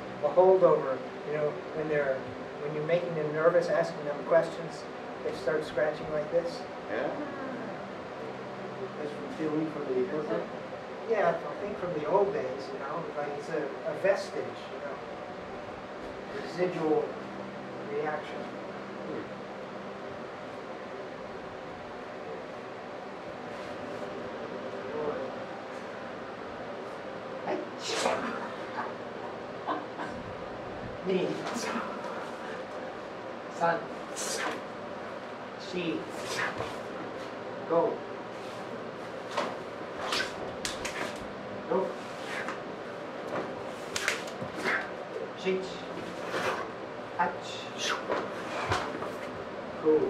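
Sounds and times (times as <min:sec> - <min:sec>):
room hiss and hum: 0:00.0 - 0:50.0.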